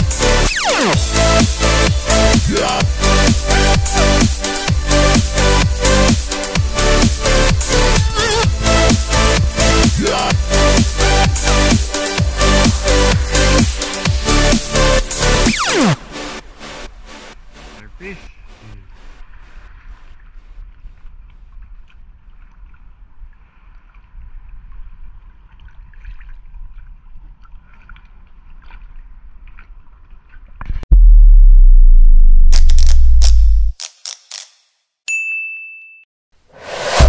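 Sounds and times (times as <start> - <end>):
whoosh: 30.9 - 33.8, 36.5 - 37.0
bright bell ding: 35.1 - 36.1.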